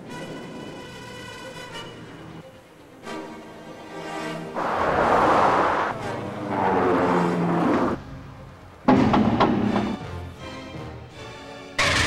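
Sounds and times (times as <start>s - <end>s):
vehicles passing at highway speed: 4.4s - 10.0s.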